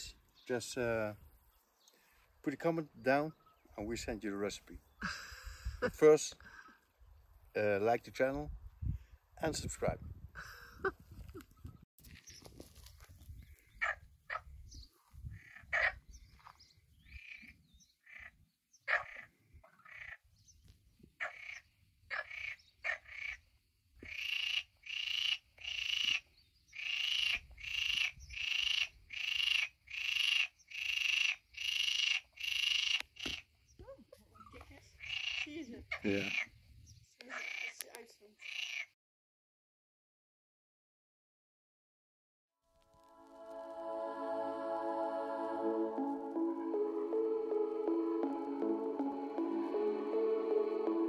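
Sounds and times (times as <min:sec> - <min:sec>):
frogs croaking: 0:13.7 - 0:14.5, 0:15.3 - 0:20.3, 0:21.2 - 0:33.7, 0:34.3 - 0:39.0.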